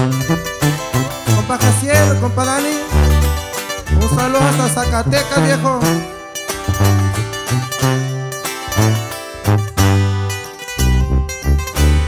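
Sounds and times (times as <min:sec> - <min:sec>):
acoustic guitar lead melody: 0:00.0 - 0:12.0
second guitar: 0:00.0 - 0:12.0
tuba bass notes: 0:00.0 - 0:12.0.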